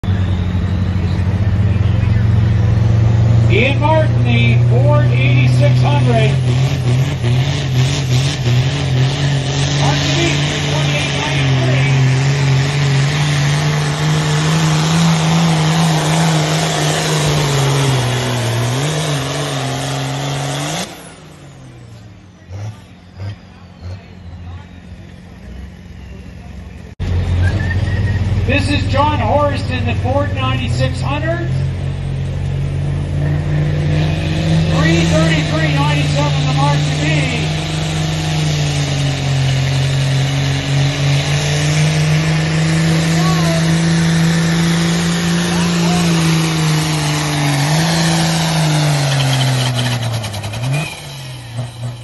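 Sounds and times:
tractor diesel engine idling: 0:00.0 - 0:06.9, 0:34.6 - 0:50.6
tractor engine droning: 0:00.0 - 0:52.0.

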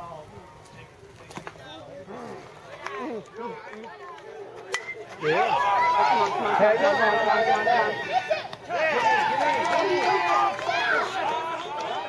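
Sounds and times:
crowd chatter: 0:00.0 - 0:12.0
spectators shouting and cheering: 0:02.1 - 0:12.0.

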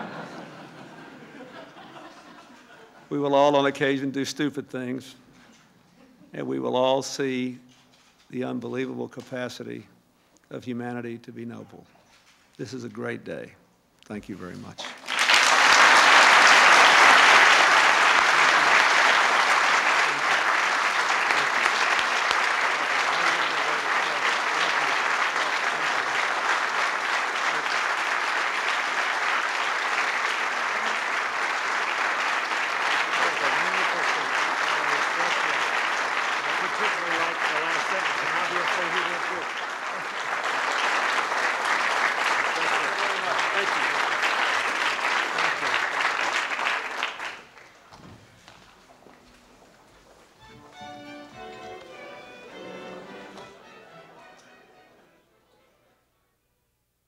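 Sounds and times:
audience applauding: 0:00.0 - 0:02.4, 0:14.8 - 0:48.8.

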